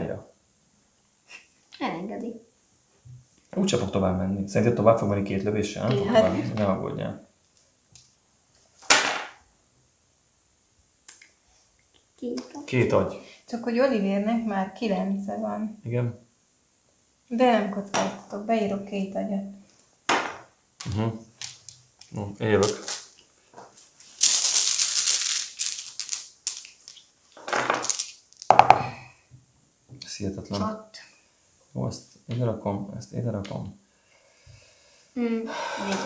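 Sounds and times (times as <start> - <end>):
dice rattling in hands: 24.2 - 28.6
dice clacking on tray: 24.2 - 28.8.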